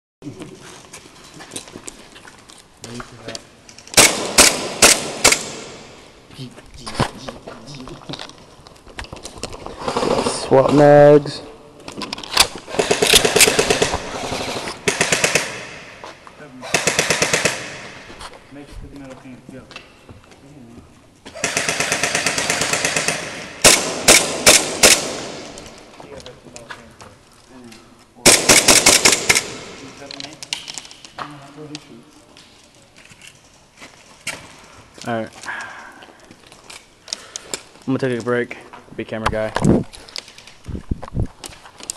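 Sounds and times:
airsoft guns firing bursts: 4.0s - 6.0s, 12.7s - 16.0s, 16.7s - 18.0s, 21.4s - 25.6s, 28.2s - 29.9s.

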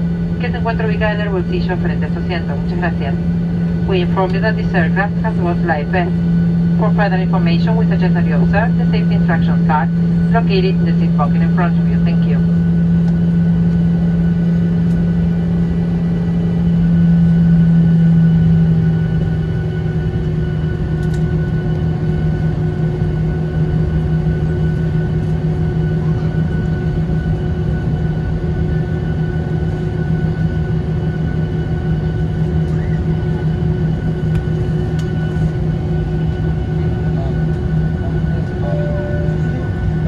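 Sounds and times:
jet engines droning in cabin: 0.0s - 40.0s.

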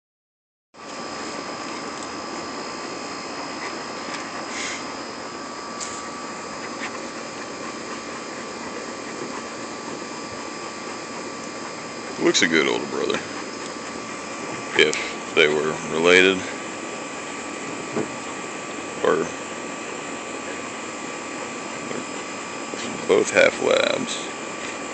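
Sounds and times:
mechanical whir and hiss: 0.9s - 24.9s.

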